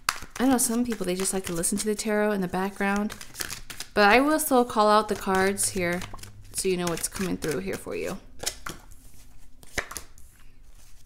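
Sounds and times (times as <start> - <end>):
sharp card tap: 9.7 - 10.1.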